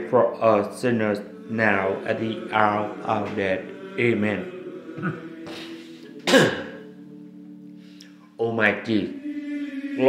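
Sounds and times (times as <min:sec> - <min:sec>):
soft background music: 0:00.0 - 0:10.0
man clearing his throat: 0:05.0 - 0:06.8.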